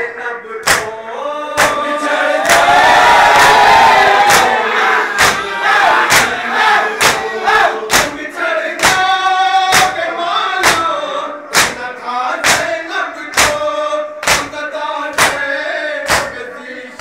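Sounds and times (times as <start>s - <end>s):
crowd of men chanting: 0.0s - 17.0s
hands slapping chests in unison: 0.6s - 0.9s, 1.6s - 4.6s, 5.2s - 5.5s, 6.1s - 6.4s, 7.0s - 7.3s, 7.9s - 8.2s, 8.8s - 15.5s, 16.1s - 16.4s.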